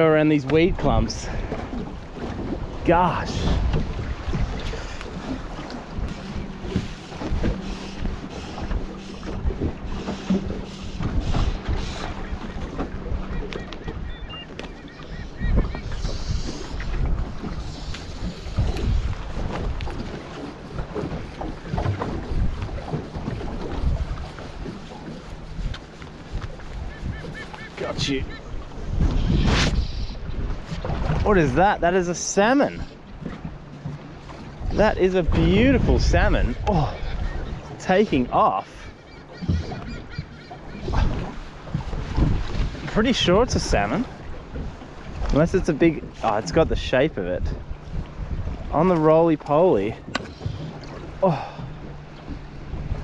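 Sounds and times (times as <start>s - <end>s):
wind buffeting microphone: 0.0s - 31.9s, 32.8s - 53.0s
waves slapping boat hull: 0.0s - 53.0s.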